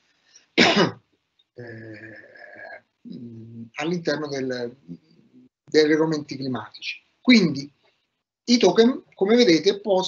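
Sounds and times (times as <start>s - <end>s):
man clearing his throat: 0.6s - 1.0s
man humming: 1.6s - 3.7s.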